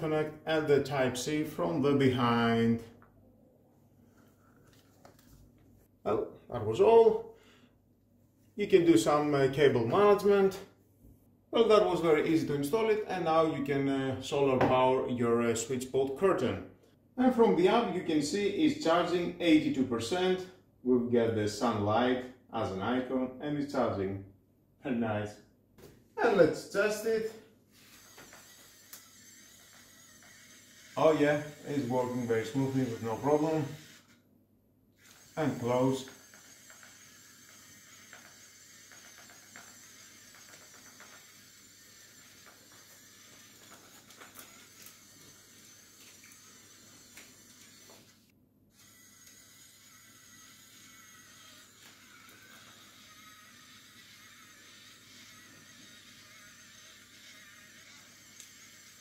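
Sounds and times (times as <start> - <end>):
curtain motor whirring: 27.7 - 34.2, 35.0 - 59.0.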